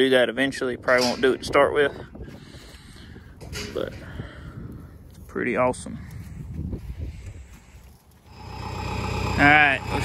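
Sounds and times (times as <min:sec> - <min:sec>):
wind rumble on microphone: 0:00.0 - 0:08.1
forklift engine idling: 0:08.3 - 0:10.0.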